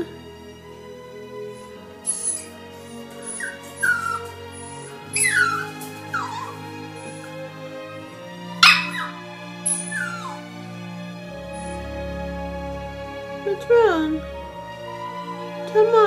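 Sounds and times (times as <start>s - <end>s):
background music: 0.0s - 16.0s
puppy whimpering: 2.0s - 7.3s, 8.6s - 10.4s.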